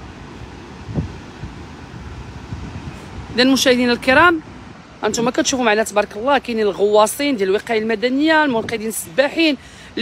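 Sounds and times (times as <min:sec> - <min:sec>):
steady outdoor noise: 0:00.0 - 0:10.0
wind buffeting microphone: 0:00.0 - 0:10.0.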